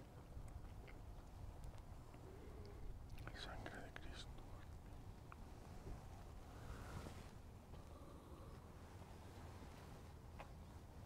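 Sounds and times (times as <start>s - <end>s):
low steady rumble: 0.0s - 11.0s
man whispering: 2.6s - 4.8s.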